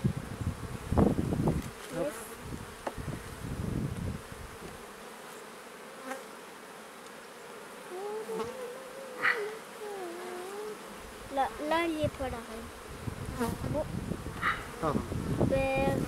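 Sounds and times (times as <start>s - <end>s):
bee flying past: 0.0s - 16.0s
honeybees buzzing: 0.0s - 16.0s
faint clicks of hive frames: 2.8s - 3.0s, 6.9s - 10.8s.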